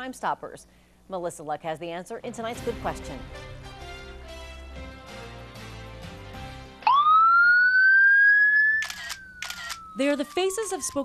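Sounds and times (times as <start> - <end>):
police siren wailing: 6.8 - 11.0
camera shutter click: 8.8 - 9.9.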